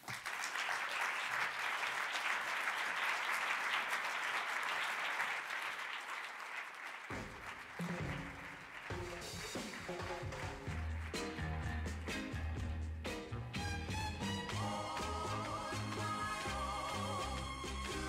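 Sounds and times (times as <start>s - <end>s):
audience applauding: 0.0s - 12.4s, 14.2s - 18.0s
music: 7.8s - 18.0s.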